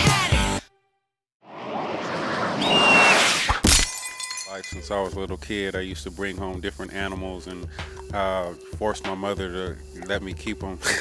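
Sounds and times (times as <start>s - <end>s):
noisy swell with high whistle: 1.5s - 3.5s
glass shattering crack: 3.6s - 4.8s.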